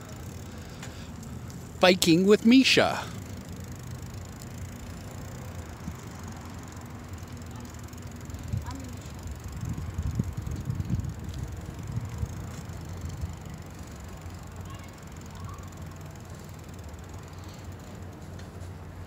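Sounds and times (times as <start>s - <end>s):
microphone rumble while cycling: 0.0s - 18.2s.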